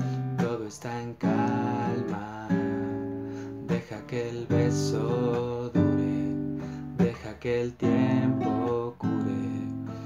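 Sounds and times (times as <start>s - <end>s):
classical guitar strumming chords: 0.0s - 10.0s.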